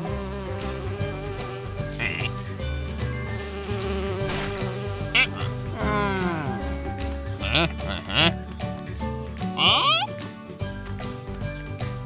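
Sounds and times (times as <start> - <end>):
cartoon wasp buzzing: 0.0 - 5.8
background music: 0.0 - 12.0.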